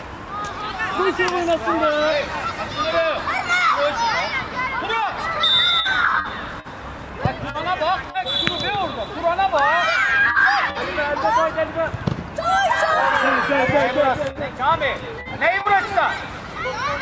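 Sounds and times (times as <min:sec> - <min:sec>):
adults shouting and calling: 0:07.5 - 0:17.0.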